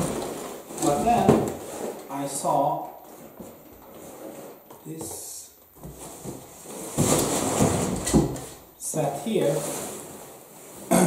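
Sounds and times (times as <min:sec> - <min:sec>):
cardboard rustling and scraping: 0:00.0 - 0:05.2, 0:05.8 - 0:10.9.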